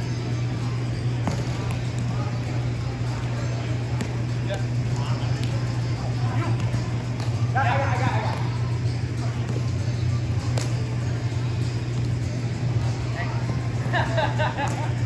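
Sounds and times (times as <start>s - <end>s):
steady low hum: 0.0s - 15.0s
ball hits: 1.2s - 2.2s, 3.8s - 4.4s, 6.5s - 7.5s.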